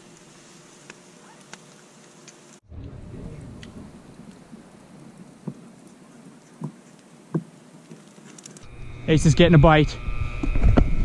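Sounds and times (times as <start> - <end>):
coals crackling and popping: 0.0 - 10.7
low rumble: 2.6 - 4.6.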